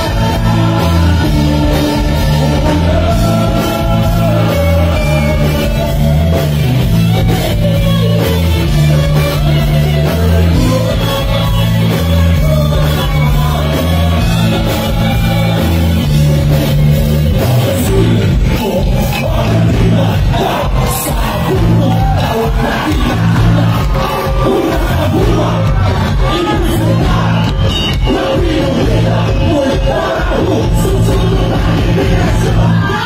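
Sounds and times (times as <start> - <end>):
bass: 0.0 - 33.0
drum kit: 0.0 - 33.0
electric guitar: 0.0 - 33.0
live rock band playing: 0.0 - 33.0
crowd shouting: 18.6 - 33.0.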